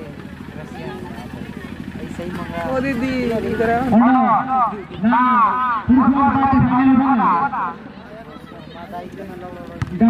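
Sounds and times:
faint distant voices: 0.0s - 10.0s
low engine-like rumble: 0.0s - 10.0s.

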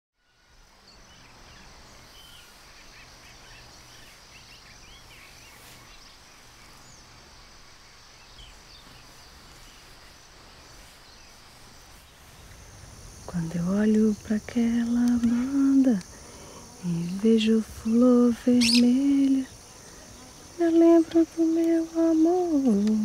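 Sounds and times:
high insect drone: 0.2s - 23.0s
low steady hum: 0.2s - 23.0s
bird chirps: 17.8s - 23.0s.

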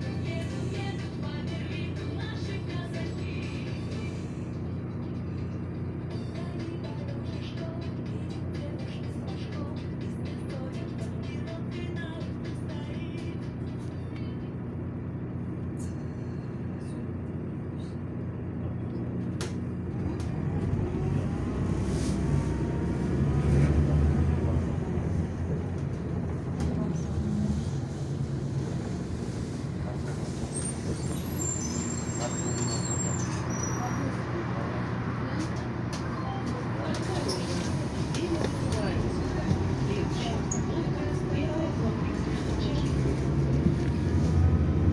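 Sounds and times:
bus engine hum: 0.0s - 44.9s
road noise: 0.0s - 44.9s.

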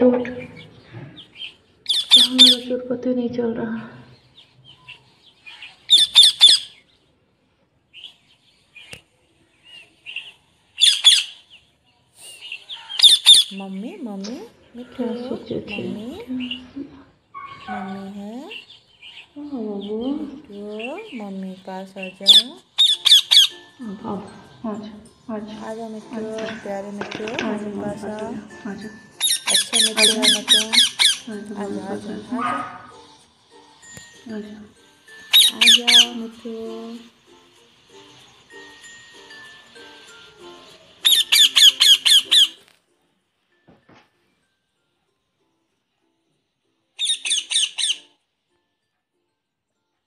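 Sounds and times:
parakeet squawking: 0.0s - 2.8s, 4.6s - 6.9s, 9.7s - 11.6s, 12.4s - 33.2s, 33.8s - 37.2s, 38.1s - 42.6s, 47.0s - 48.1s
parakeet chirping faintly: 0.0s - 42.6s.

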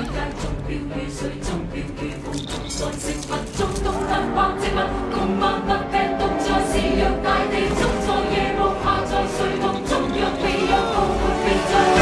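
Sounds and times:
choir singing: 0.0s - 12.0s
dramatic musical accompaniment: 0.0s - 12.0s.

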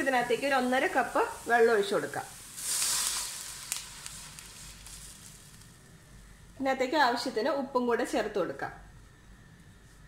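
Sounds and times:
water hissing in hot oil: 0.0s - 6.4s
onions sizzling in wok: 0.0s - 7.0s.

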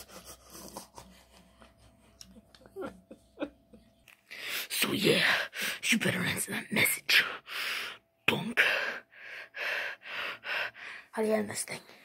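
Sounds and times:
person breathing hard behind mask: 8.6s - 11.2s.

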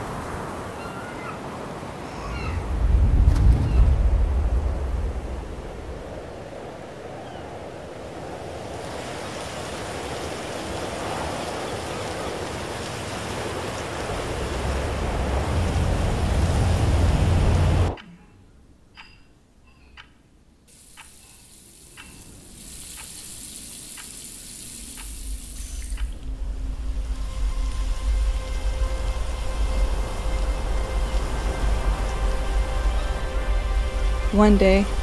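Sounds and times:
wind on microphone: 2.0s - 18.0s
shallow stream running: 6.0s - 18.0s, 20.7s - 35.0s
faucet hissing: 20.7s - 26.2s.

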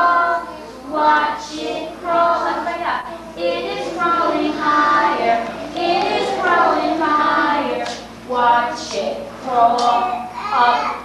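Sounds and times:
young children singing: 0.0s - 11.0s.

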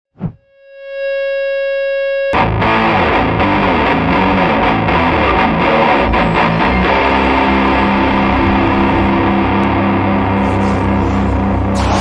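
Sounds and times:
distorted electric guitar riff: 0.5s - 12.0s
short musical hit: 10.1s - 12.0s.

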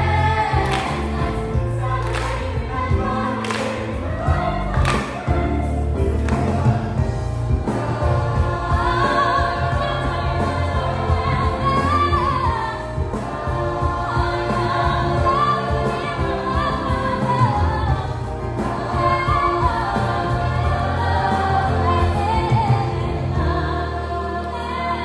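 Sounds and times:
steady bass line: 0.0s - 24.4s
musical accompaniment: 0.0s - 25.0s
teenagers singing together: 0.0s - 25.0s.

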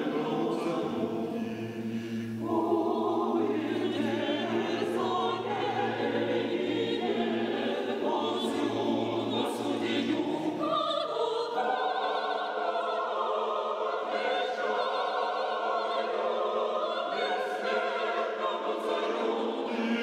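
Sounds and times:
choir singing unaccompanied: 0.0s - 20.0s.

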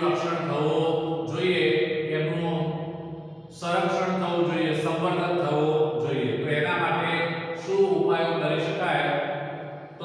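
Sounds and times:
man lecturing: 0.0s - 10.0s.

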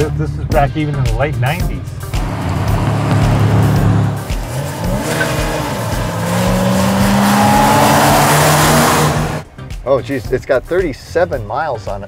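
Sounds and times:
truck engines accelerating: 1.6s - 9.6s
tyre and rushing noise: 2.2s - 9.4s.

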